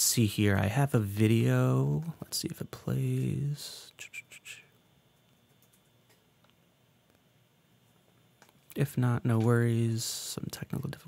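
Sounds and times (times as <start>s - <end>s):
faint room noise: 0.0s - 11.0s
computer mouse clicks: 5.4s - 6.6s.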